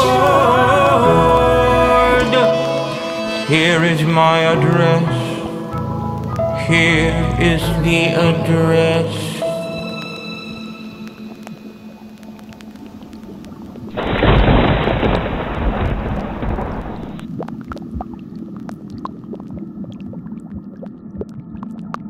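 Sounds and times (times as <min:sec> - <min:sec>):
faint crackles and clicks: 0:11.0 - 0:22.0
thunderclap with deep rumble: 0:13.9 - 0:17.2.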